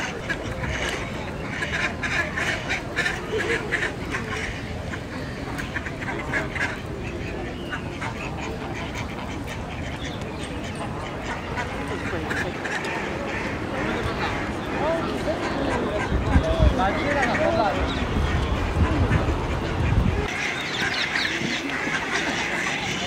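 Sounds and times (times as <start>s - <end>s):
waterfowl calling: 0.0s - 23.0s.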